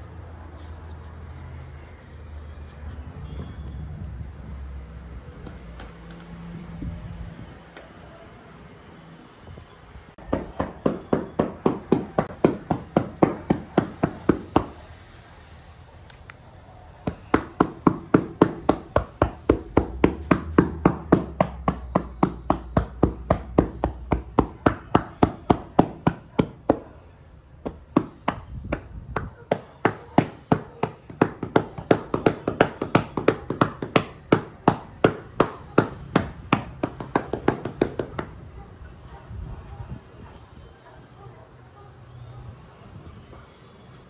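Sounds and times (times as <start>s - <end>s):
hands striking back through towel: 27.7s - 38.3s.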